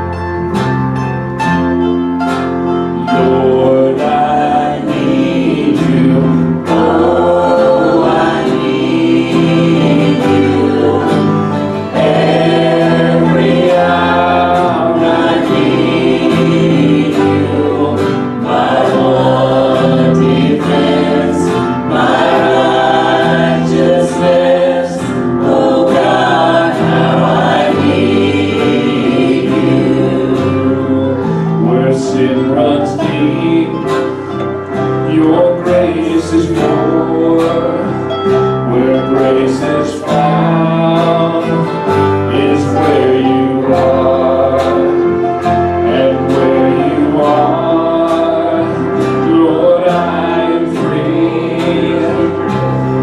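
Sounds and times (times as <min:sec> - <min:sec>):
band accompaniment: 0:00.0 - 0:53.0
group singing worship song: 0:01.8 - 0:53.0.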